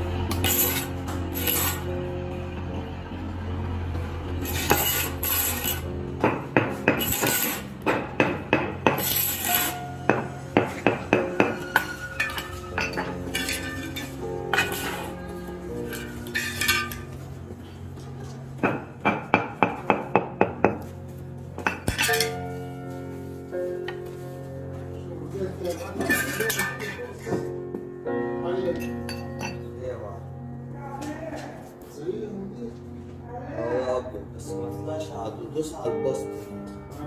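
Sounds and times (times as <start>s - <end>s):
background music: 0.0s - 37.0s
hammer tapping tile: 6.2s - 11.7s.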